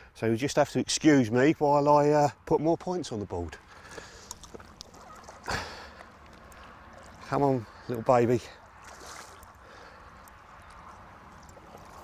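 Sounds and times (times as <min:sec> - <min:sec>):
faint water sloshing: 0:03.5 - 0:12.0.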